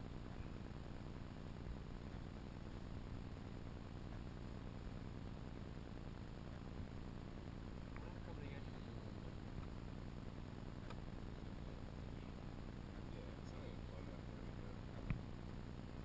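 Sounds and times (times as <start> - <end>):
low outdoor rumble: 0.0 - 16.0
faint click: 10.8 - 11.0.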